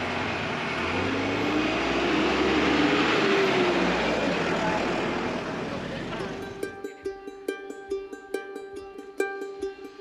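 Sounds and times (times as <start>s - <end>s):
bus driving past: 0.0s - 10.0s.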